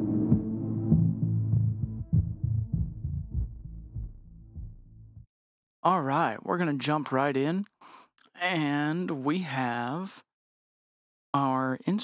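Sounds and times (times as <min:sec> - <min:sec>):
drum hits: 0:00.0 - 0:05.2
sequenced electronic bass line: 0:00.0 - 0:05.3.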